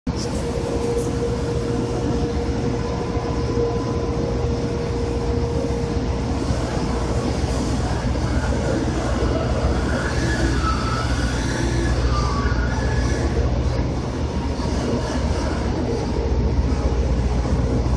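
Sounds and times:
faint wavering squeaks: 0.1 - 16.9
heavy engine machinery rumble: 0.1 - 17.9
steady hum tone: 0.1 - 17.9.

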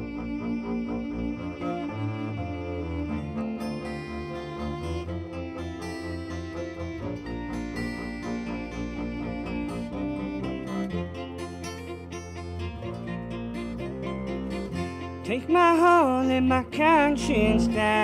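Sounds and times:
acoustic guitar: 0.0 - 18.0
bowed upright bass: 0.0 - 18.0
fiddle: 0.0 - 18.0
mandolin: 0.0 - 18.0.

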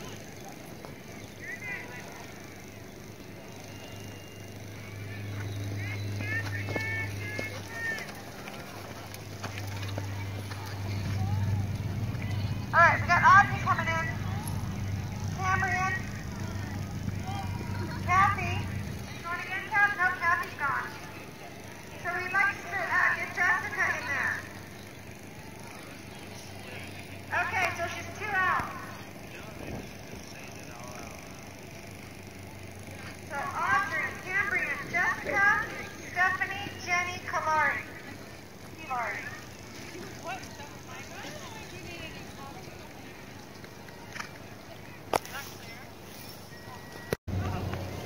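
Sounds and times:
indistinct voices: 0.0 - 48.0.

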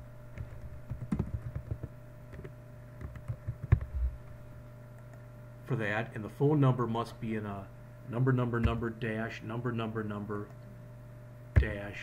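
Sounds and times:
steady low hum: 0.0 - 12.0
keyboard typing: 0.4 - 3.9.

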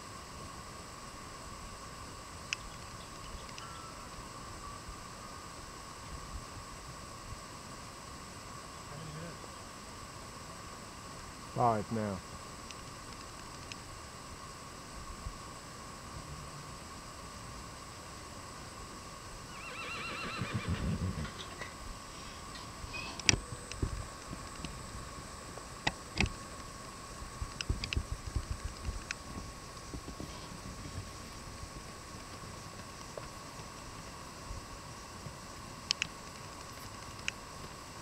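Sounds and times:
horse whinnying: 19.5 - 21.4.

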